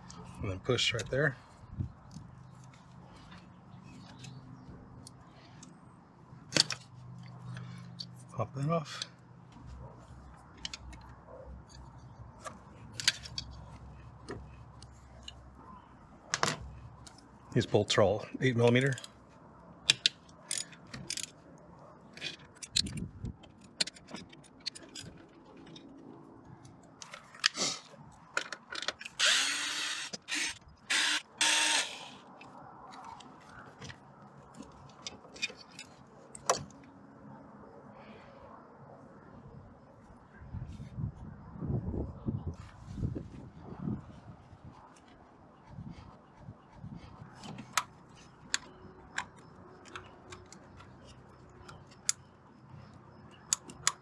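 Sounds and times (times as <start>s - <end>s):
tools and metal parts clattering: 10.5s - 14.6s, 16.3s - 19.2s, 19.8s - 26.2s, 26.8s - 29.2s, 32.9s - 36.7s, 47.3s - 54.0s.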